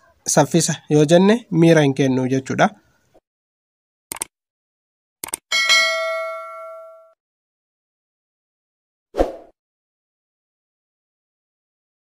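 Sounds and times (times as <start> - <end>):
double clicks: 4.1 - 4.3, 5.2 - 5.4
notification bell ding: 5.5 - 7.2.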